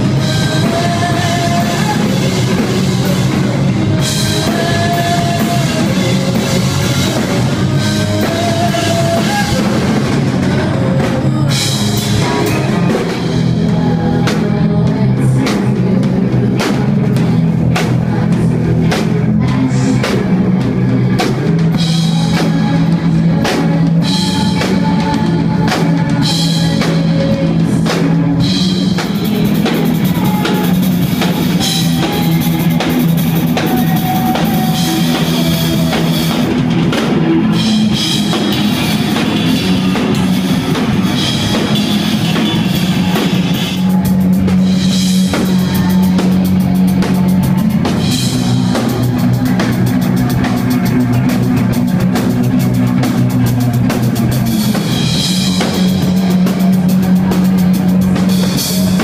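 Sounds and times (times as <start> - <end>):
drum kit: 0.0 - 59.0
electric guitar: 0.0 - 59.0.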